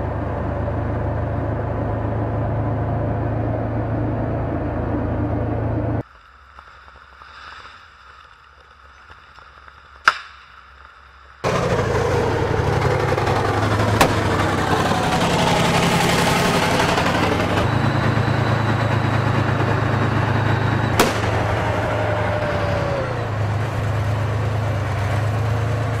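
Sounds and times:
diesel engine running: 0.0s - 6.0s, 11.4s - 26.0s
sharp cracks: 6.0s - 12.2s, 12.8s - 17.5s, 21.0s - 22.2s
sharp bang: 13.6s - 17.7s, 20.9s - 21.9s.

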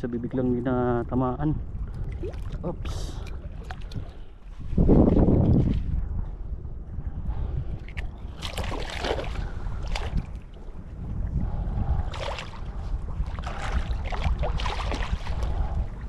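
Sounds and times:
wind rumble on microphone: 0.0s - 16.0s
seawater splashing: 12.0s - 16.0s.

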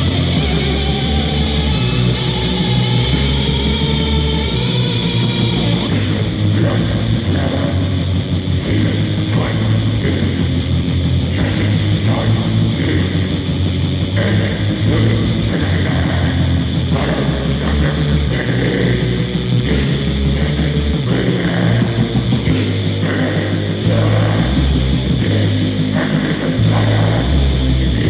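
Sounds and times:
heavy metal band playing: 0.0s - 28.0s.

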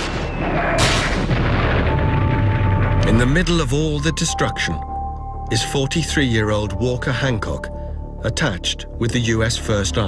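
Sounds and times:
shell blast: 0.0s - 2.3s
low rumble of explosions: 0.0s - 4.0s.

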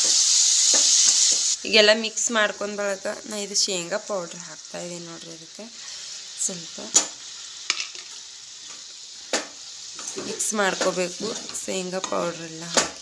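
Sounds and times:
sauce sizzling in a pan: 0.0s - 13.0s.

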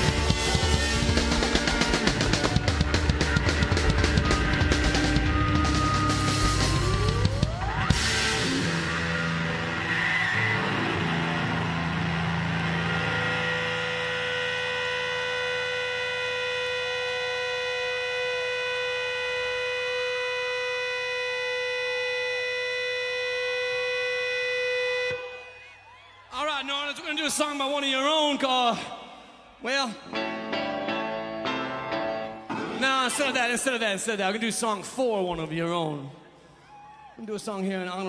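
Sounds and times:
crowd cheering: 0.0s - 22.2s, 23.0s - 27.0s, 36.4s - 37.3s
electric guitar drone: 0.0s - 25.5s.

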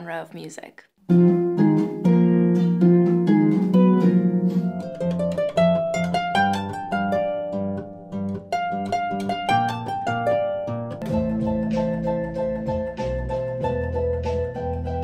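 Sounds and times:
solo harp plucking: 1.1s - 15.0s.

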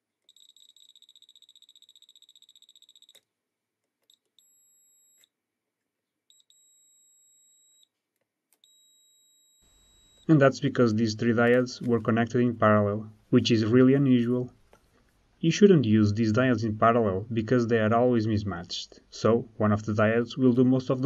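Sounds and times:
multimeter beeping: 0.2s - 3.3s, 4.0s - 5.3s, 6.3s - 7.9s, 8.6s - 12.3s.

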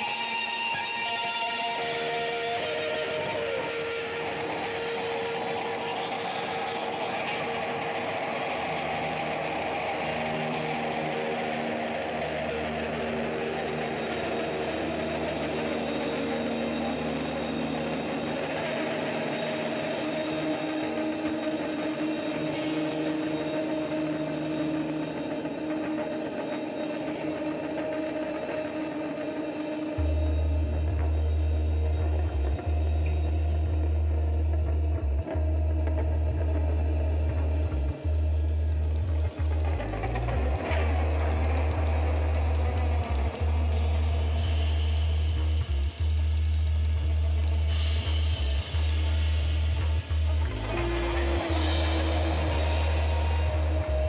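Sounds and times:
live psychedelic rock band: 0.0s - 54.0s
deep electric bass: 30.0s - 54.0s.

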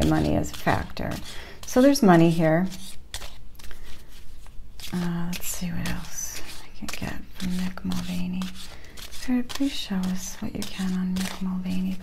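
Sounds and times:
woman speaking: 0.0s - 2.8s, 4.9s - 8.6s, 9.2s - 12.0s
cards being shuffled: 0.0s - 12.0s.

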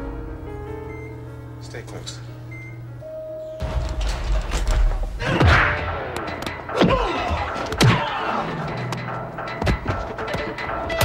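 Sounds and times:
film music score: 0.0s - 11.0s.

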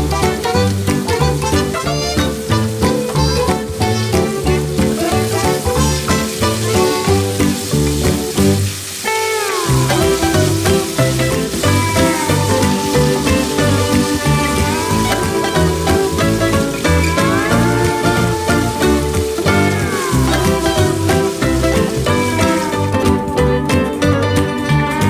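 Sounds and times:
upbeat background music: 0.0s - 8.8s, 9.7s - 25.0s
meat sizzling in a frying pan: 0.0s - 23.5s.

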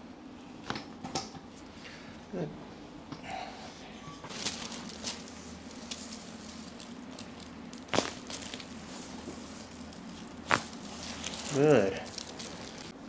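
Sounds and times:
neck joint cracking: 6.7s - 8.7s, 9.8s - 13.0s.

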